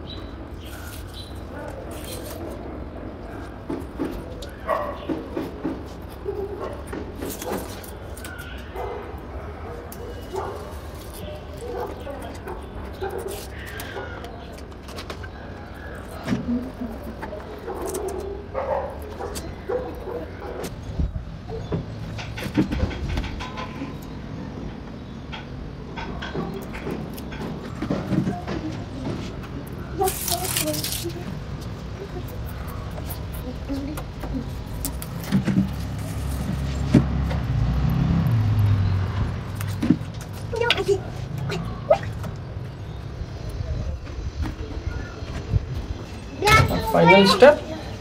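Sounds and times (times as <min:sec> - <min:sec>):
tape ripping: 0:30.0 - 0:31.4.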